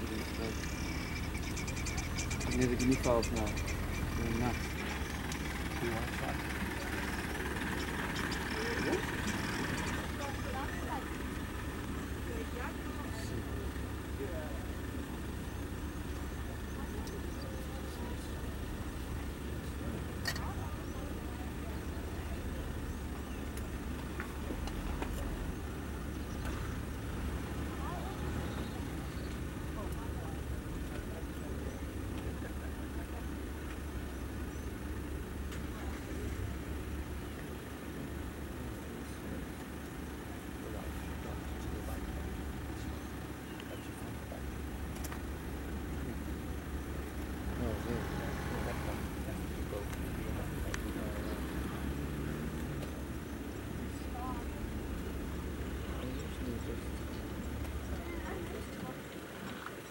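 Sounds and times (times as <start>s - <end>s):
vehicle engine running: 0.0s - 59.9s.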